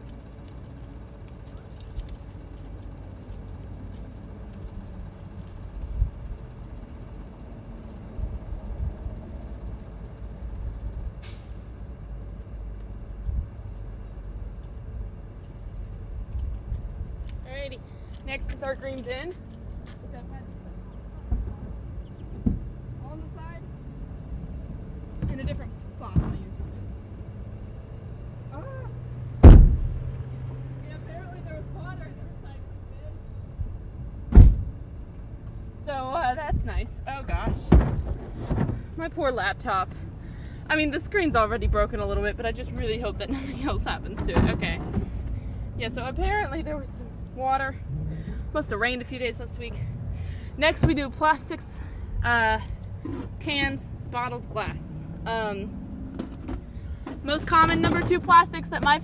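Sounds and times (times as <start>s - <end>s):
traffic rumble: 0.0s - 59.0s
distant thumps and knocks: 21.3s - 22.8s, 29.4s - 30.0s, 37.4s - 38.9s
loud close knock: 29.4s - 29.8s.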